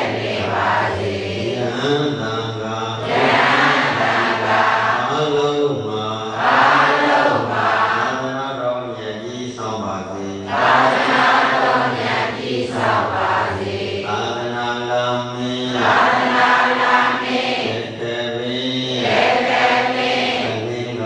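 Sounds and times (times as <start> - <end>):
man chanting into a microphone: 0.0 - 16.4, 17.6 - 21.0.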